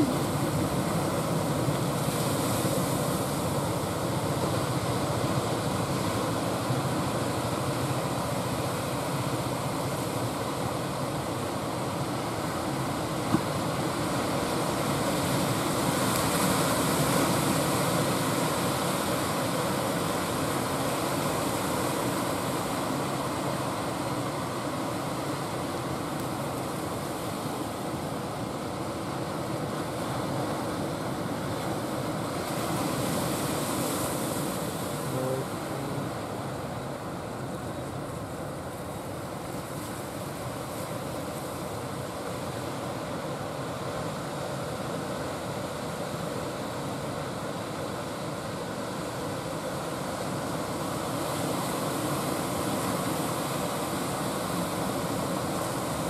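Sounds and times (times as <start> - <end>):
surf washing: 0.0 - 56.0.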